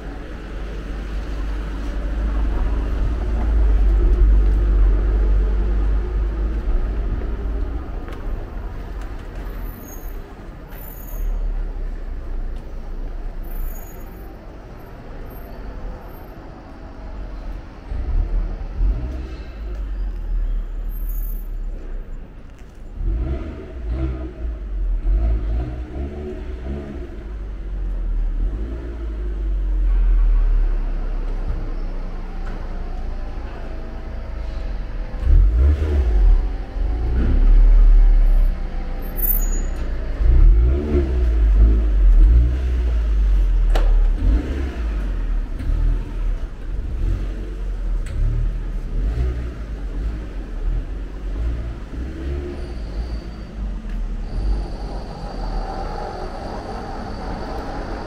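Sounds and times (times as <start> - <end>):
heavy low rumble: 0.0 - 10.6, 16.6 - 20.9, 26.2 - 58.0
car engines running: 0.0 - 58.0.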